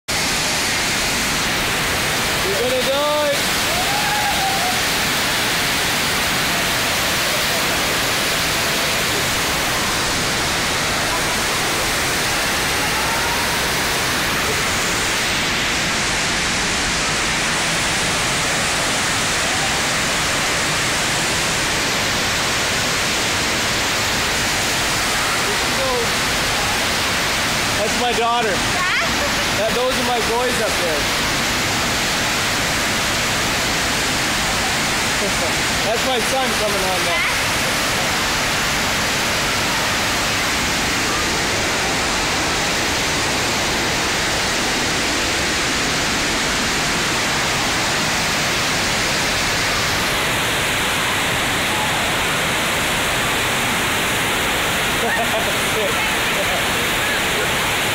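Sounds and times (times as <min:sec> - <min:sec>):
rushing water: 0:00.1 - 0:57.9
voices: 0:06.4 - 0:15.1.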